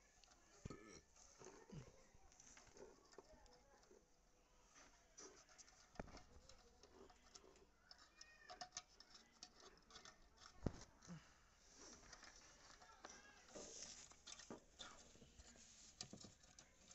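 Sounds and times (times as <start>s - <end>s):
small clicks and taps of screwdriver: 6.0s - 10.6s.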